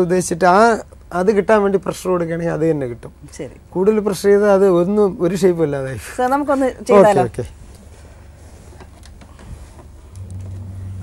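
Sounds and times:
pottery wheel motor humming: 9.9 - 11.0.

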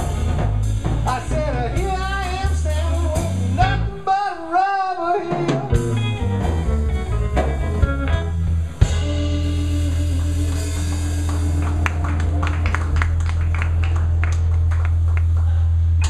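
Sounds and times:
bass guitar: 0.0 - 16.0
drums: 0.0 - 16.0
electric guitar lead: 5.3 - 15.4.

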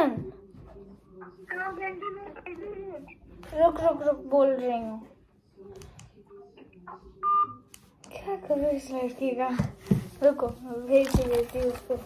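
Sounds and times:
phone beep: 7.2 - 7.7.

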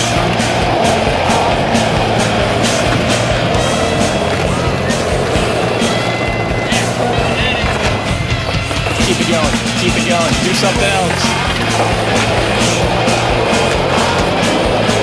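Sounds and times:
music playing: 0.0 - 15.0
skateboard wheels rolling on concrete: 0.0 - 15.0.

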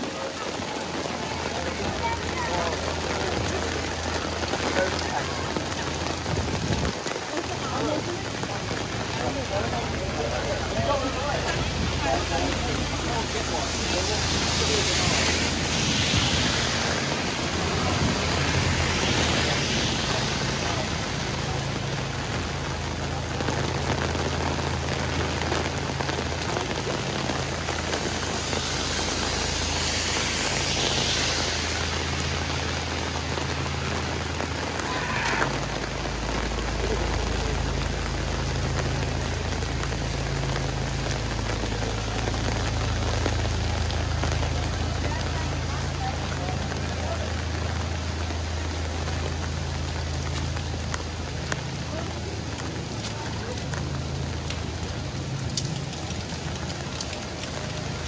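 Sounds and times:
heavy rain on pavement: 0.0 - 58.0
low engine hum: 0.0 - 58.0
traffic swishing on wet road: 0.0 - 58.0.

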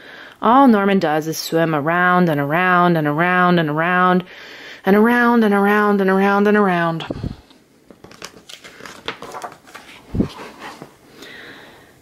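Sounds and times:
paper page rustling: 7.9 - 11.0.

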